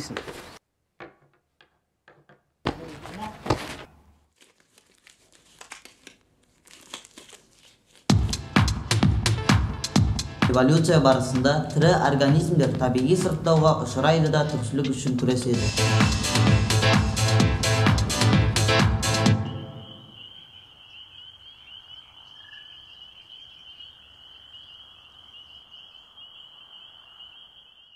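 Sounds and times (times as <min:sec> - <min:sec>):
crinkling in hands: 0:02.9 - 0:08.4
high-pitched trilling chorus: 0:19.3 - 0:21.6.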